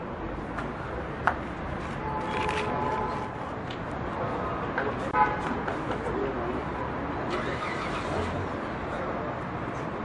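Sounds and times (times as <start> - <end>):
crowd din with low rumble: 0.0 - 10.0.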